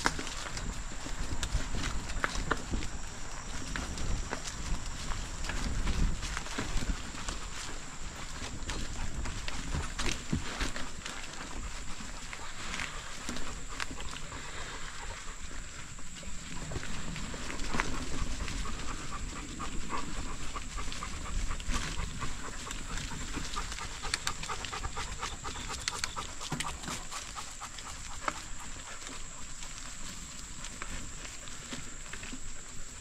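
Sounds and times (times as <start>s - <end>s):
bicycle tyres on dirt trail: 0.0s - 33.0s
dog panting: 0.1s - 33.0s.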